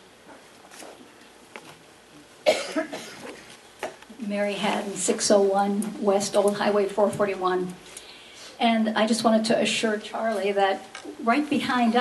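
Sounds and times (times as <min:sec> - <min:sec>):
loud cough: 0:02.4 - 0:03.4.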